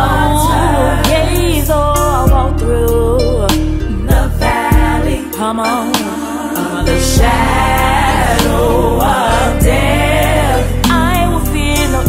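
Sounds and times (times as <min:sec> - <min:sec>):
gospel choir singing: 0:00.0 - 0:02.6, 0:03.8 - 0:12.0.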